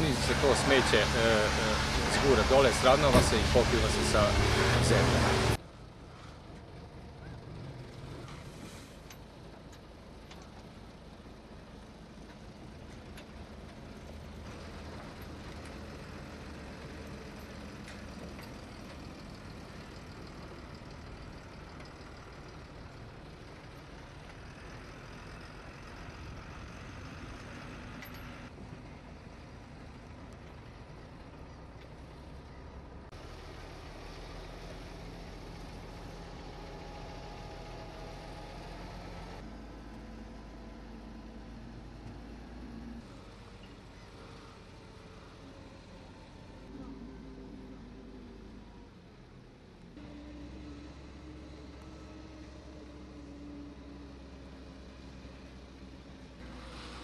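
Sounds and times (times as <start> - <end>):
diesel engines humming: 0.0 - 57.0.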